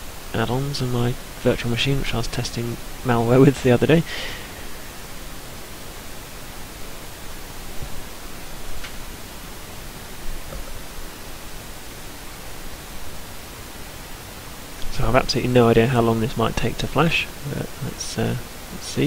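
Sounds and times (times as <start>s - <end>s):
background hiss: 0.0s - 19.0s.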